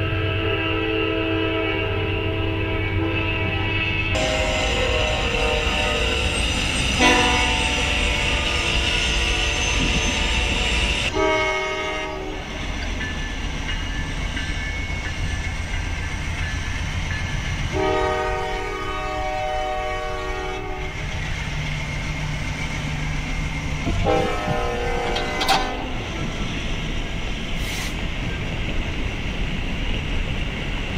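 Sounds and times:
train horn blasts: 0:00.0 - 0:12.5, 0:17.7 - 0:21.0, 0:23.9 - 0:26.1
train rumbling past: 0:00.0 - 0:30.9.

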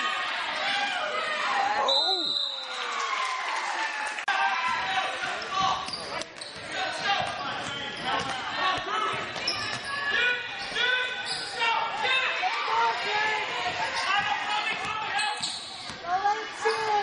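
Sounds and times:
shouts and voices echoing: 0:00.0 - 0:17.0.

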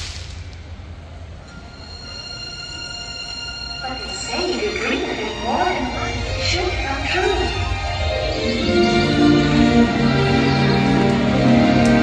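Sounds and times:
faint hiss: 0:00.0 - 0:01.7
loud outdoor soundtrack: 0:00.0 - 0:12.0.

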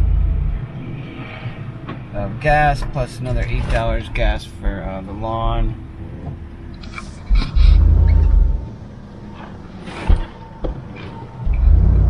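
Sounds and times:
low rumble in vehicle cab: 0:00.0 - 0:12.0
road and cabin hiss: 0:00.0 - 0:12.0.

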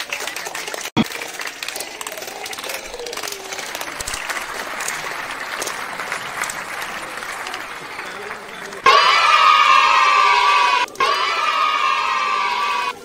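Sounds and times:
audience applause: 0:00.0 - 0:13.0
voices talking: 0:00.0 - 0:13.0.

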